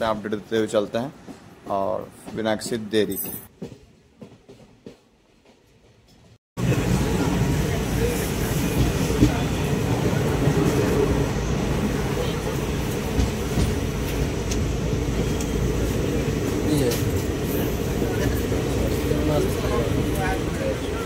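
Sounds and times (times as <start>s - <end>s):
train rumbling: 0.0s - 21.0s.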